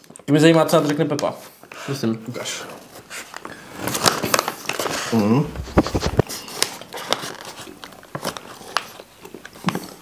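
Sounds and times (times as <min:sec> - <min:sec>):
plastic bag crinkling: 0:03.4 - 0:10.0.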